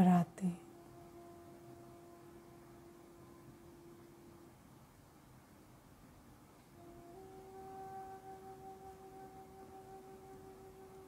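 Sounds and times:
meditation music drone tone: 0.0 - 5.5, 6.6 - 11.0.

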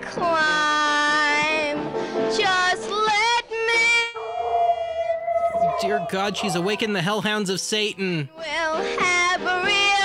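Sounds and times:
girl singing into a microphone: 0.0 - 4.2, 8.3 - 10.0.

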